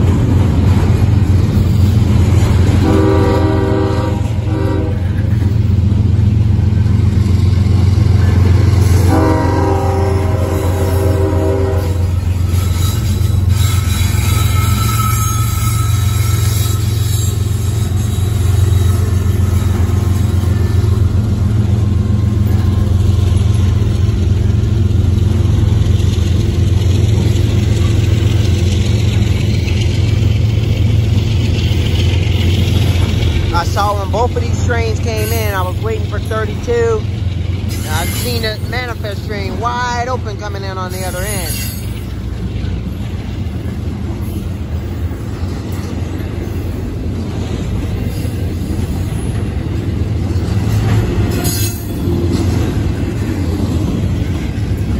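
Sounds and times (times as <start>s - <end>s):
freight train rumbling on rails: 0.0s - 54.9s
locomotive horn: 2.6s - 5.4s, 8.8s - 19.2s.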